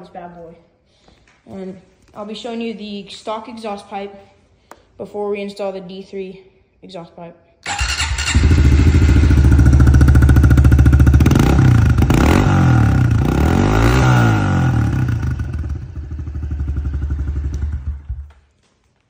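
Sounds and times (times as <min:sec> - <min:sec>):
motorcycle engine idling and revving: 0:07.7 - 0:18.4.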